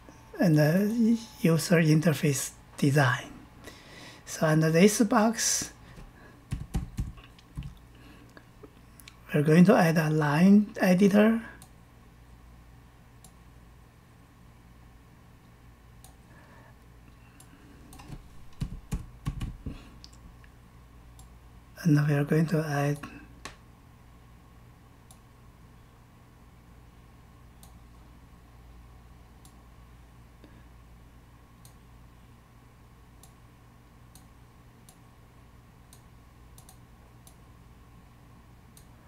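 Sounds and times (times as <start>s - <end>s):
steady low hum: 0.0s - 39.0s
computer keyboard typing: 6.5s - 7.8s, 18.0s - 19.7s
computer mouse clicks: 27.6s - 27.8s, 33.2s - 33.4s, 34.1s - 35.0s, 35.9s - 37.4s.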